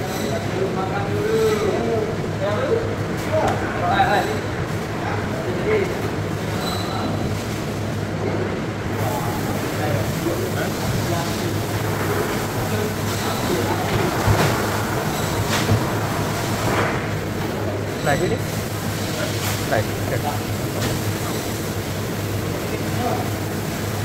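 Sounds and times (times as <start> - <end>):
machinery hum: 0.0 - 24.0.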